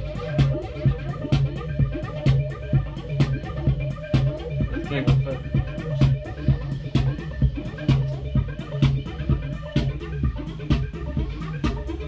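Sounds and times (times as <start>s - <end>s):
electronic music with steady beat: 0.0s - 12.0s.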